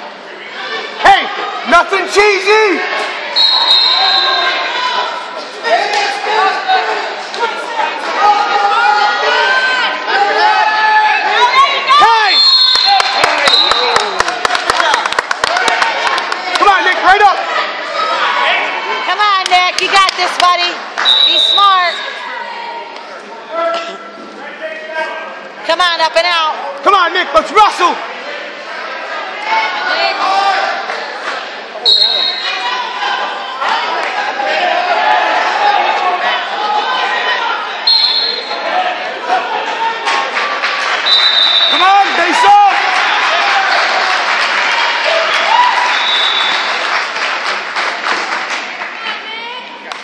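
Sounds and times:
crowd shouting and cheering: 0.0s - 50.0s
referee's whistle blast: 3.4s - 4.6s, 12.2s - 14.0s, 21.0s - 22.0s, 31.8s - 32.6s, 37.8s - 38.6s, 41.0s - 42.0s, 45.9s - 46.7s.

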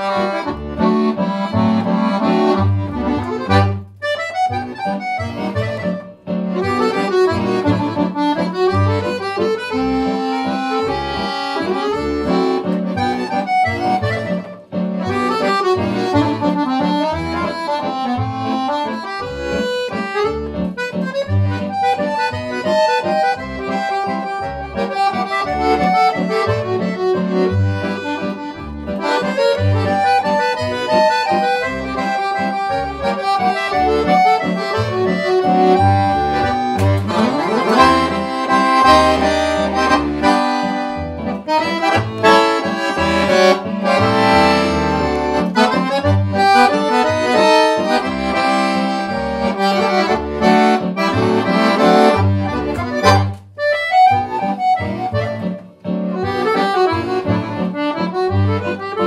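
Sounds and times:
accordion playing a tune: 0.0s - 59.0s.

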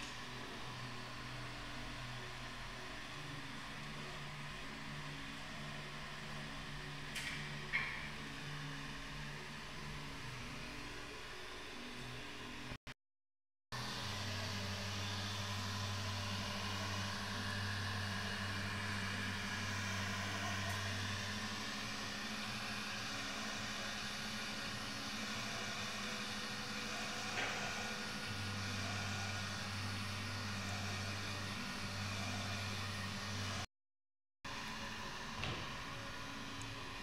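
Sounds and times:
heat gun fan humming: 13.8s - 33.6s.

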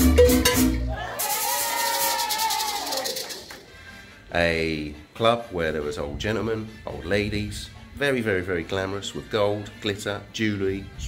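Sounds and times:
bass beat: 0.0s - 1.0s
maraca shaking: 0.0s - 3.7s.

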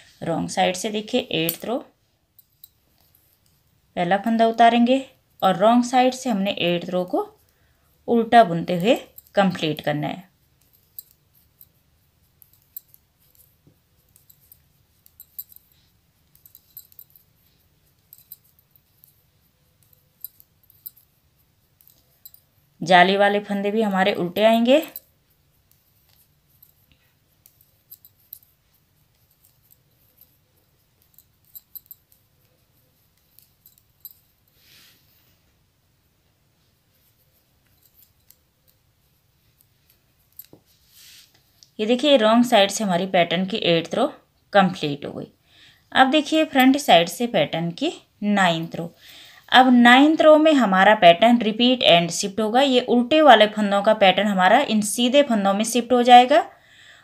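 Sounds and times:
metal knitting needles clicking: 0.8s - 3.7s, 8.2s - 34.9s, 36.9s - 40.7s.

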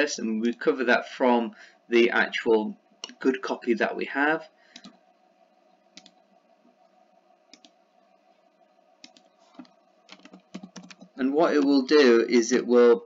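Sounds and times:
faint steady hum: 0.0s - 13.0s
computer keyboard typing: 6.0s - 6.2s, 9.0s - 11.7s
mouse clicks: 7.5s - 7.8s, 9.0s - 11.1s.

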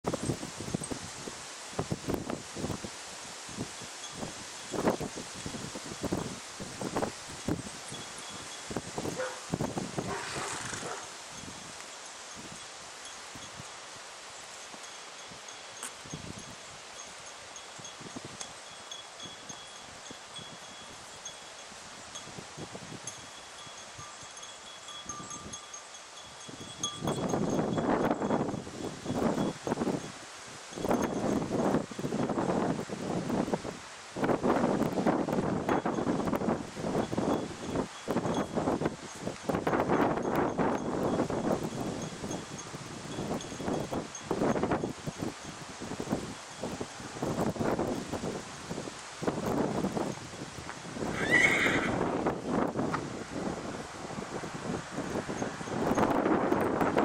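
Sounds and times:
wind buffeting microphone: 0.0s - 11.8s, 15.3s - 16.9s, 26.3s - 57.0s
steady outdoor hiss: 0.0s - 57.0s.

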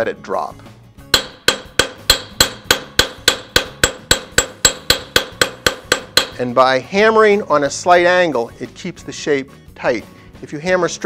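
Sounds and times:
hammer striking brass rod: 1.1s - 6.4s.

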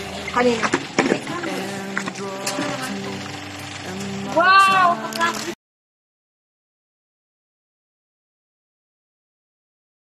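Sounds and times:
quiet background music: 0.0s - 5.6s.

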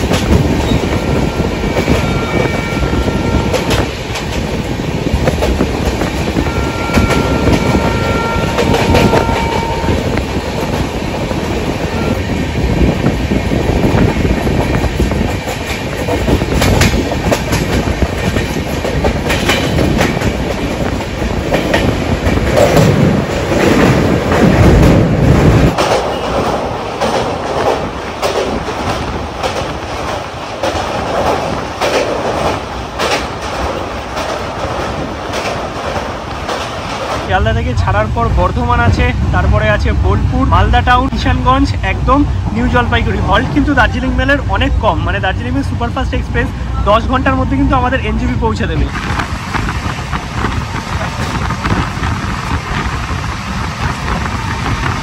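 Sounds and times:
train wheels clattering over rails: 0.0s - 37.4s, 48.8s - 55.0s.

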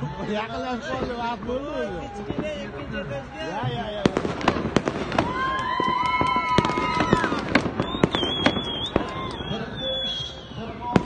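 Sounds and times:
fireworks bangs and cracks: 0.0s - 11.0s.

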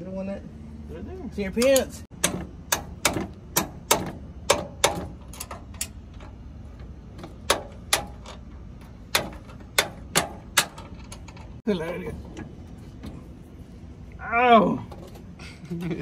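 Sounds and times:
metal tools clicking and tapping: 1.5s - 11.6s.

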